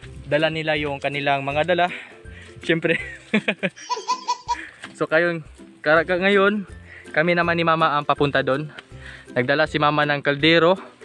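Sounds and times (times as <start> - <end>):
person laughing: 2.9 - 4.8.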